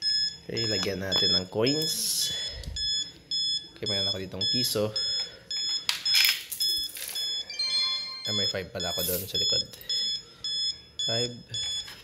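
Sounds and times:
high-pitched electronic beeps: 0.0s - 12.0s.

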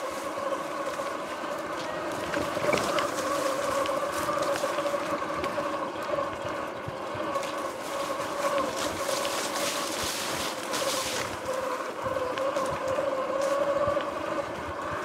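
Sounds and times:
grass swishing against bike: 0.0s - 6.5s, 7.1s - 15.0s
electric motor whining: 0.0s - 15.0s.

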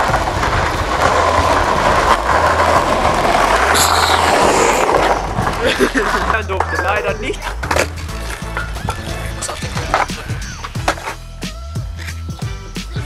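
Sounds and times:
skateboard wheels rolling on asphalt: 0.0s - 13.0s.

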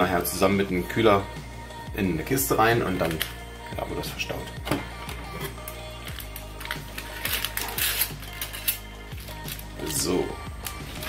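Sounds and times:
background music: 0.0s - 11.0s
plastic bag crinkling: 5.6s - 10.0s.

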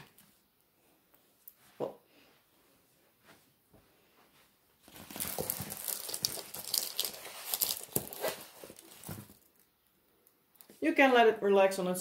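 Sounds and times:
plastic film crinkling: 4.8s - 9.7s.

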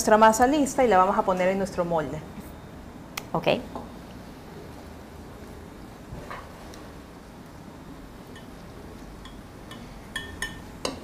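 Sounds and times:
utensils clinking against dishes: 9.2s - 11.0s.

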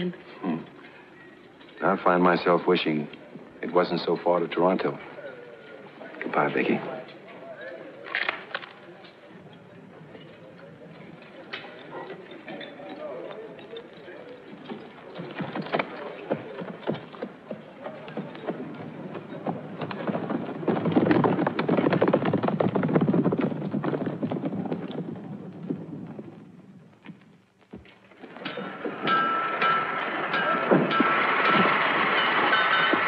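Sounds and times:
horse hooves clip-clopping on dirt: 9.0s - 33.0s.

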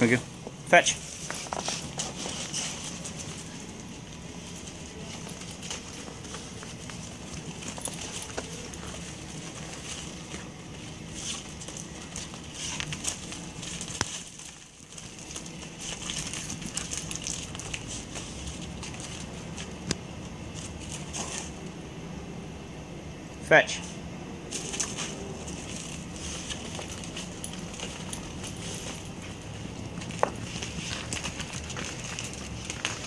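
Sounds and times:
dog paws crunching on snow: 0.8s - 21.7s, 24.5s - 33.0s.

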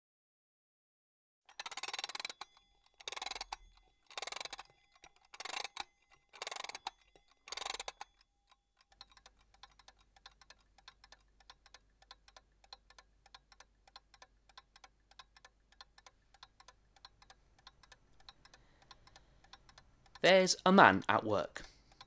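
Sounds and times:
rapid light clicking: 1.5s - 20.3s.

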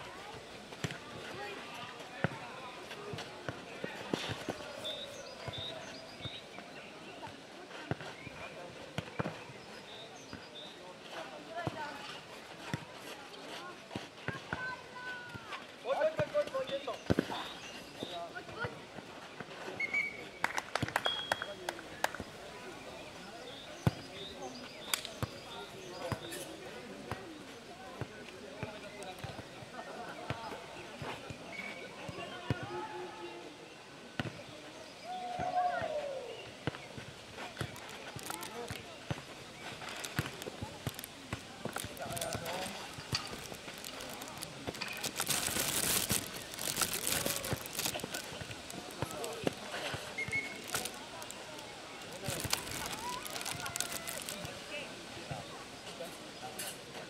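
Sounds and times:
voices of players and onlookers: 0.0s - 57.0s.

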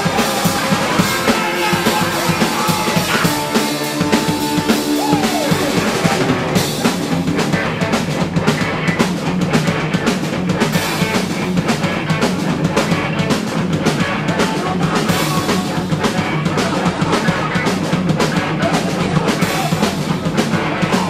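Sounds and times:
live rock band playing: 0.0s - 21.0s
high tone gliding down: 0.6s - 7.6s.

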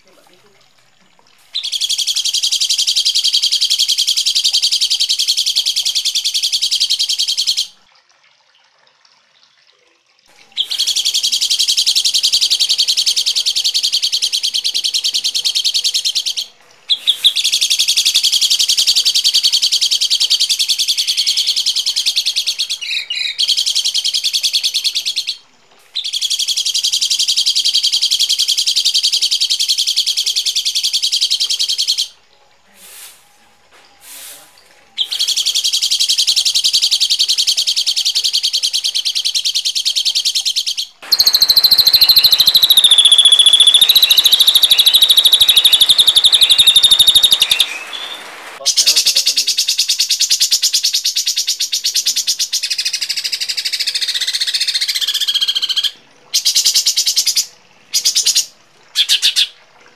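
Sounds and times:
harsh songbird chatter: 10.5s - 25.4s, 35.0s - 59.5s.

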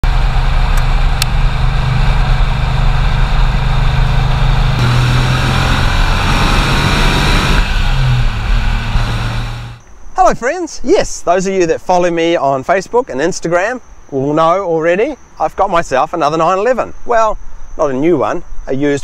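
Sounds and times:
car engine drone: 0.0s - 9.8s
road and wind noise: 0.0s - 10.2s.

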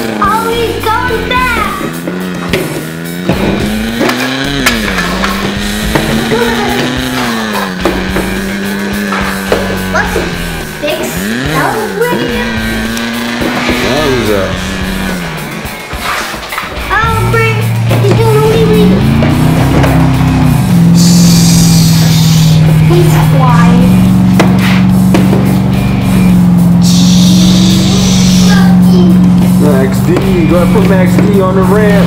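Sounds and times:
child making engine noises: 0.0s - 2.0s, 4.2s - 14.6s, 16.8s - 19.8s, 21.0s - 24.1s, 26.8s - 29.8s
background music: 0.0s - 32.0s.

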